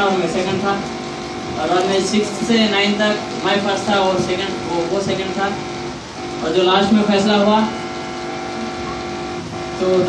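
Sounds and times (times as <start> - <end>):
person speaking: 0.0 - 5.7
steady hum of held tones: 0.0 - 10.0.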